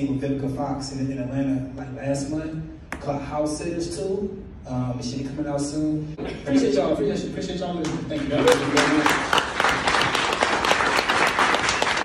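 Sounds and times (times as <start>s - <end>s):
audience applauding: 8.2s - 12.0s.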